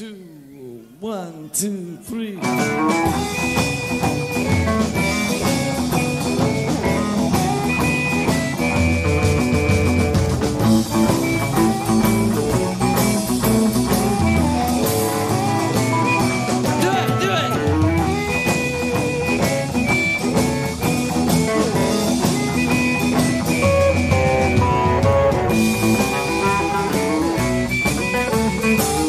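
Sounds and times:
drums: 0.0 - 29.0
electric guitar lines: 2.4 - 29.0
electric bass: 2.5 - 29.0.

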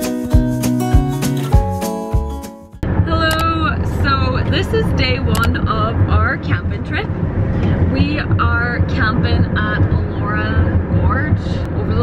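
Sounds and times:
car rumble on road: 2.8 - 12.0
woman talking: 3.0 - 12.0.

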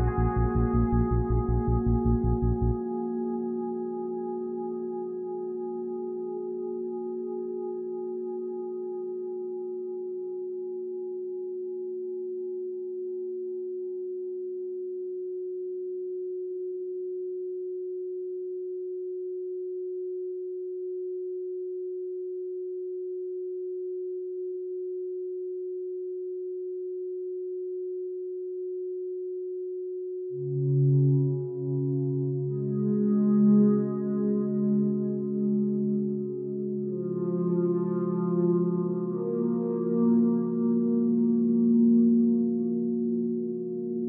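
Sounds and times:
steady electronic tone: 0.0 - 9.0.

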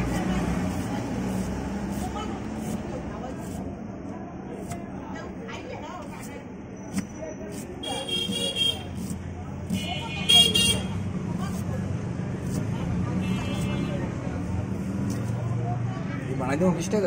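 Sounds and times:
knife slicing onion: 0.0 - 5.2, 5.9 - 15.5
street traffic hum: 0.0 - 17.0
vehicle horn: 7.8 - 8.9, 9.8 - 10.9, 13.2 - 14.0.

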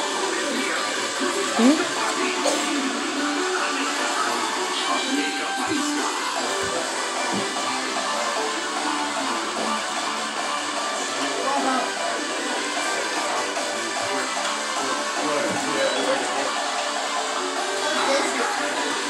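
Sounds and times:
person singing: 0.0 - 16.6
music playing: 0.0 - 19.0.

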